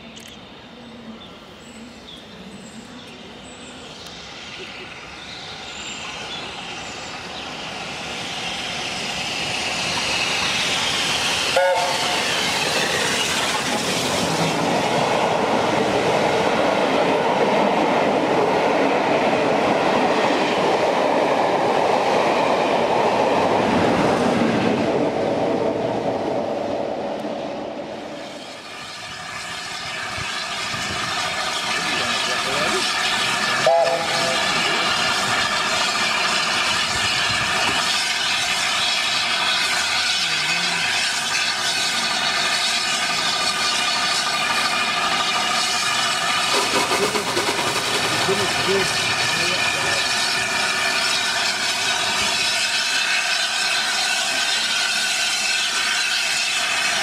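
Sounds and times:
coaches rushing on rails: 0.0s - 57.0s
steam train passing: 0.0s - 57.0s
train whistle: 11.5s - 12.4s, 33.5s - 34.6s.

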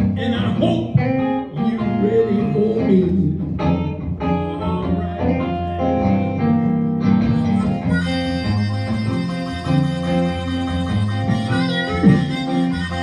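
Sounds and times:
electric guitar walking accompaniment: 0.0s - 13.0s
amplified harmonica wailing: 4.3s - 13.0s.

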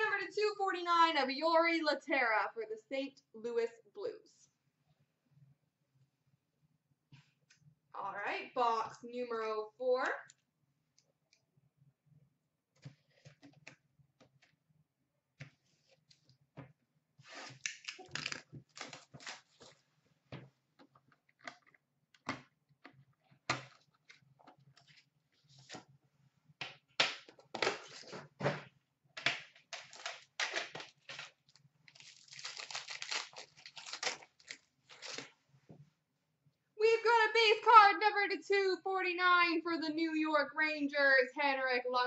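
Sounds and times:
tearing and crinkling cardboard wrapping: 17.2s - 19.8s, 29.7s - 35.4s.

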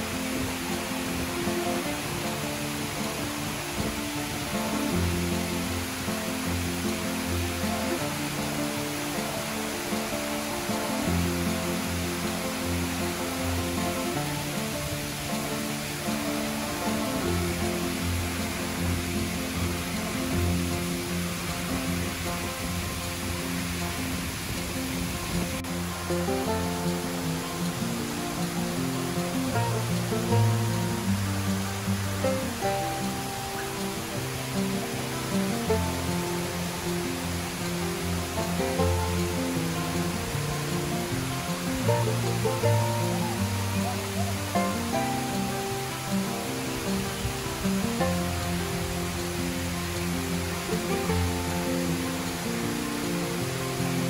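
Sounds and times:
fountain water rushing: 0.0s - 54.0s
music of held notes: 0.0s - 54.0s.

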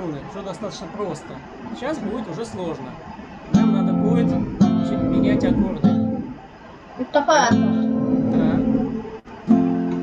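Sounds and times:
acoustic guitar strumming: 3.0s - 10.0s.

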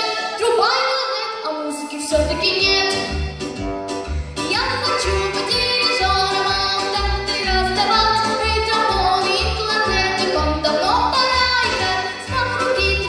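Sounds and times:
girl singing into a microphone: 0.0s - 3.1s, 4.5s - 13.0s.

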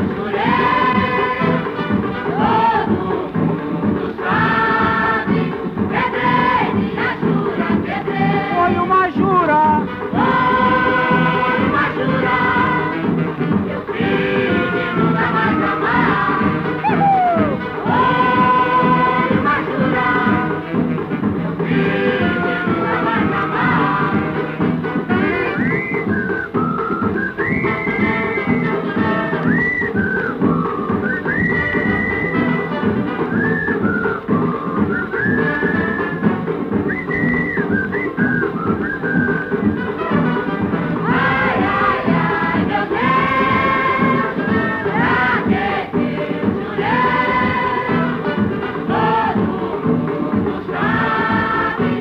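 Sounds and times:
voices singing with band: 0.0s - 9.0s, 10.0s - 20.9s, 21.5s - 52.0s
old instrumental record music: 0.0s - 52.0s.

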